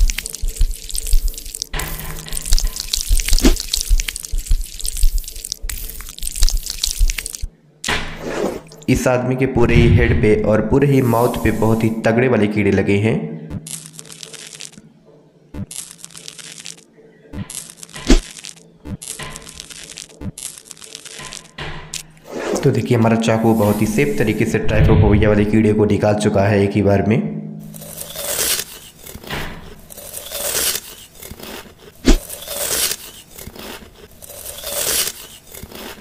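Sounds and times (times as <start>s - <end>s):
knife slicing crunchy growth: 0.0s - 4.6s, 17.5s - 22.6s, 27.8s - 36.0s
dense crackling of cutting: 0.0s - 8.0s, 15.6s - 22.8s, 27.8s - 36.0s
sharp loud thud: 9.6s - 10.5s.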